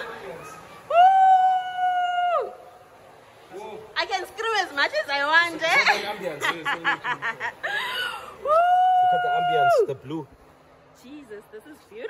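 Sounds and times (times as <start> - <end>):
woman's high cry of joy: 0.9 - 2.6, 7.7 - 9.9.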